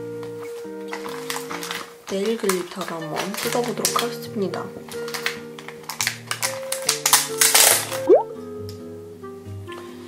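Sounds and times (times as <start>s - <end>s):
plastic packaging crackling and tearing: 0.9s - 8.1s
background music: 1.0s - 10.0s.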